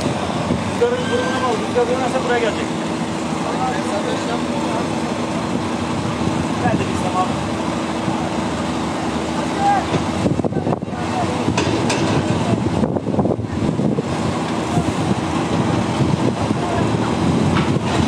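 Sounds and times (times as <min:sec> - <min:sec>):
engines running: 0:00.0 - 0:18.0
people calling out: 0:00.7 - 0:01.8.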